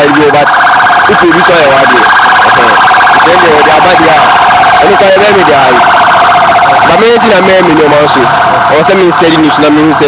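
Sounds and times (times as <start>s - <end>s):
siren warbling: 0.0s - 10.0s
voices talking: 0.0s - 10.0s.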